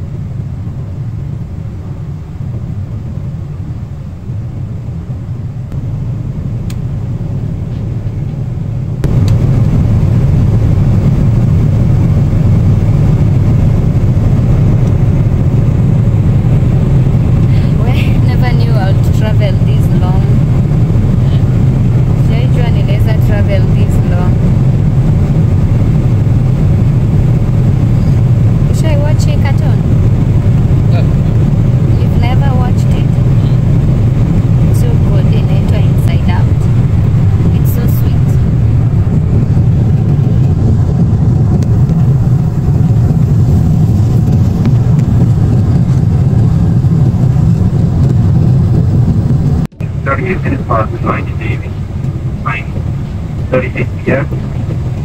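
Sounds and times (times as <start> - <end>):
jet engine rumble: 0.0 - 55.0
faint voices: 49.8 - 54.9.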